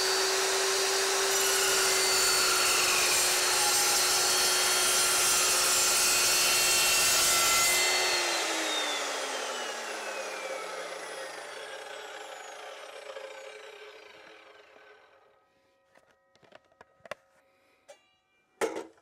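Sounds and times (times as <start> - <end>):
chop saw winding down: 0.0 - 15.4.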